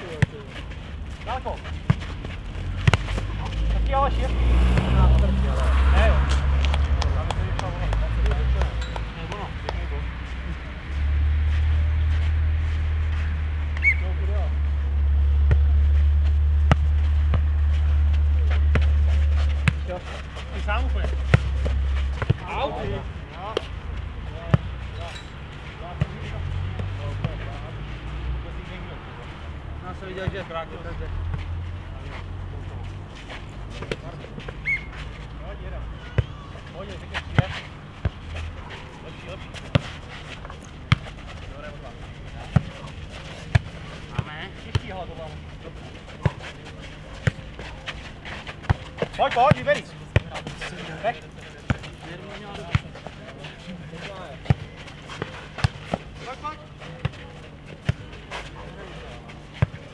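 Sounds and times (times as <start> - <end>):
ball thudding: 2.8 - 3.4.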